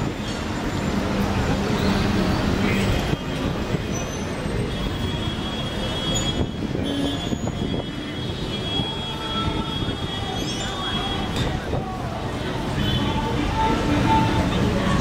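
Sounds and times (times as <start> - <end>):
hum of people: 0.0 - 15.0
traffic: 0.0 - 15.0.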